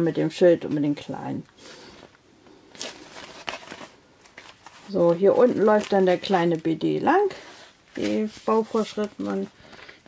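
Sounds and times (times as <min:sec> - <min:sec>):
paper pages rustling: 0:02.0 - 0:10.0.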